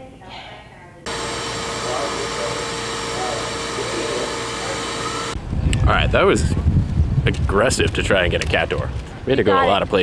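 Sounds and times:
mid-pitched hum: 1.1 - 7.2.

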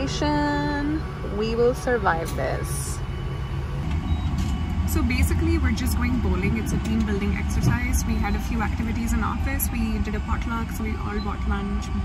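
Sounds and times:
vehicle rumble inside car: 3.6 - 12.0.

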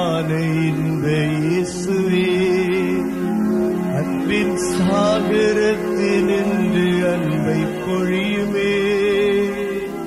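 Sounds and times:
person singing a religious song: 0.0 - 3.3, 3.9 - 10.0.

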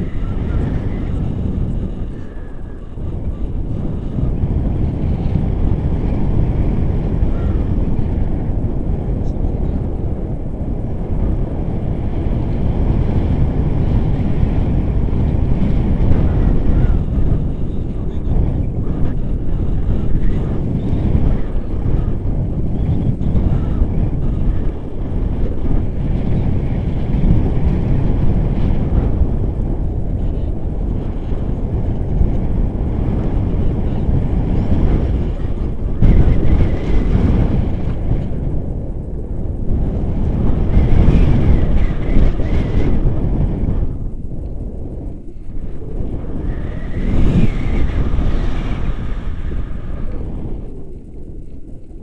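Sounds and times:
wind rushing over microphone: 0.0 - 52.0.

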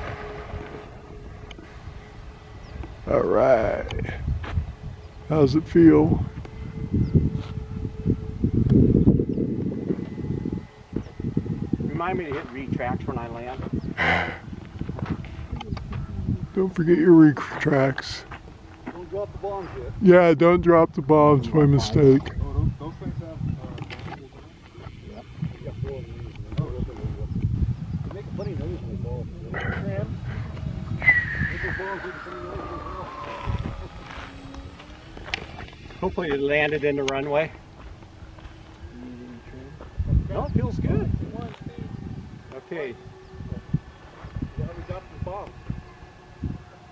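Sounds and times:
low rumble: 0.0 - 46.9
model airplane whine: 0.0 - 46.9
wind buffeting microphone: 0.0 - 46.9
falling bomb whistle: 31.0 - 33.9.

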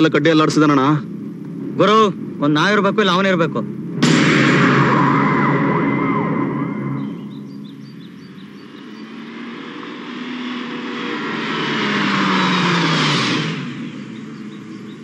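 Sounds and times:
loud rushing sound: 3.8 - 8.0
car driving by: 3.8 - 15.0.

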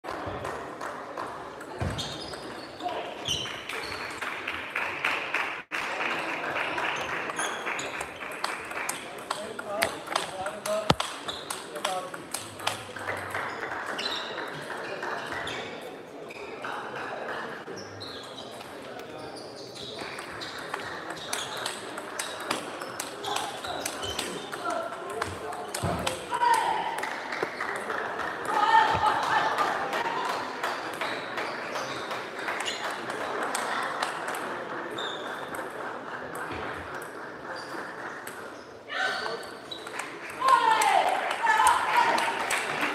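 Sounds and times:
hum of people talking: 0.1 - 42.9
table tennis balls clicking: 7.8 - 14.6, 20.2 - 26.2.

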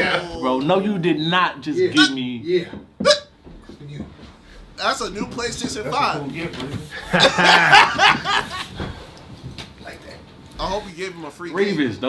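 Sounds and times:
men laughing: 6.9 - 9.0.

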